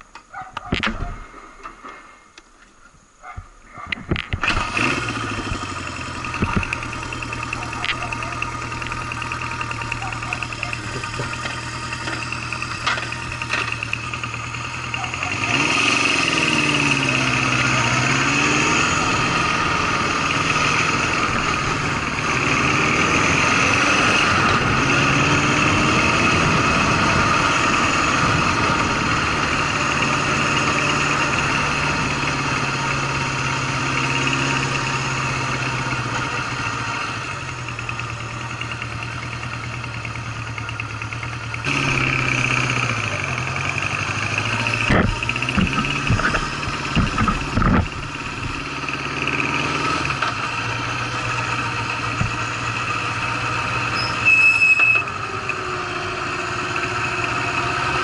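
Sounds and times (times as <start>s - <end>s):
motorcycle engine revving: 4.1s - 58.0s.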